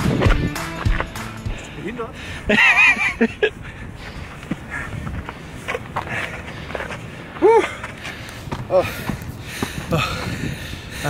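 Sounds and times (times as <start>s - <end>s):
footsteps crunching on dirt: 0.0s - 1.8s, 4.1s - 10.4s.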